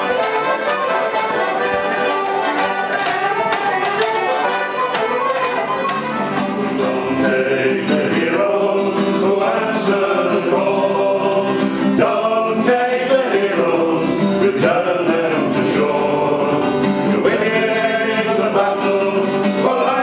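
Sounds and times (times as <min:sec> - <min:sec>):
acoustic guitar: 0:00.0 - 0:20.0
folk band with fiddles and accordion: 0:00.0 - 0:20.0
man singing: 0:06.6 - 0:20.0.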